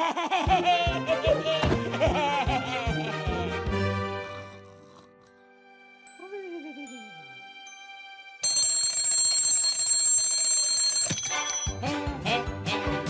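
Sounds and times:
alarm clock bell ringing: 7.7s - 11.8s.

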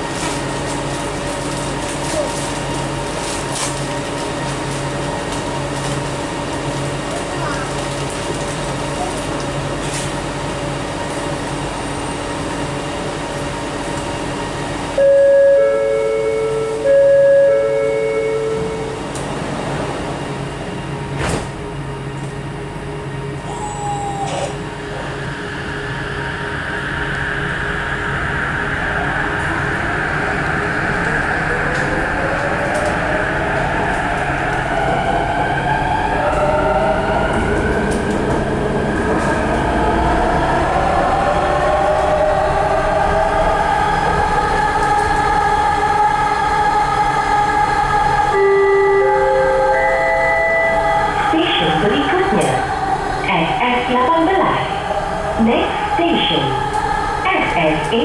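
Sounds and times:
train rumble: 0.0s - 58.0s
train motor inverter whine: 9.5s - 58.0s
station announcement: 10.3s - 58.0s.

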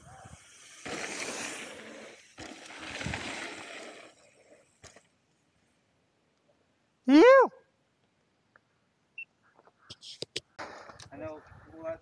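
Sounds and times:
bike tyres rolling on dirt: 0.0s - 5.9s.

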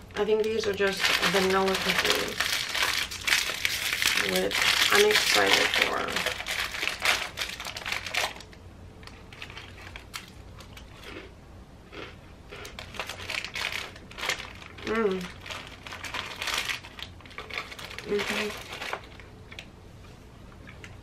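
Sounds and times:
plastic wrapper crinkling: 0.3s - 11.1s, 12.6s - 19.7s.

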